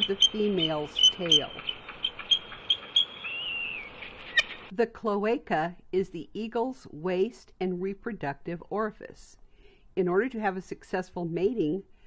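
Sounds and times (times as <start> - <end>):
eagle wavering whistled call: 0.0 - 4.7
eagles chirping: 0.0 - 4.7.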